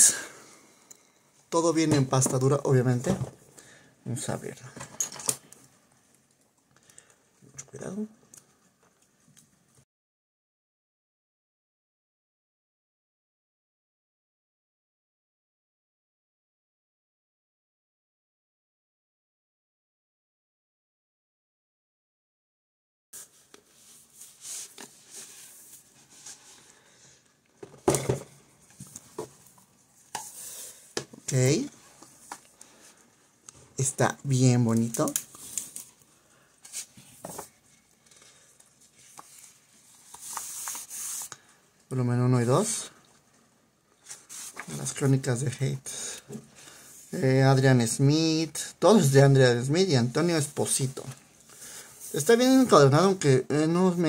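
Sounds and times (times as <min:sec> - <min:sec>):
books rustling and sliding: 0:36.6 - 0:37.8, 0:38.8 - 0:41.3, 0:44.0 - 0:45.0.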